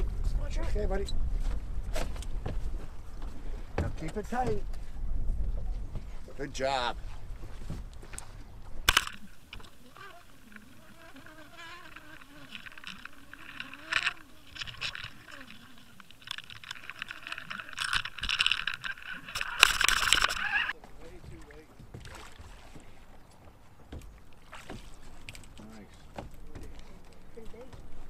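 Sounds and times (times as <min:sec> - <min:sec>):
water rushing hiss and crackle: 0:08.8 - 0:20.8.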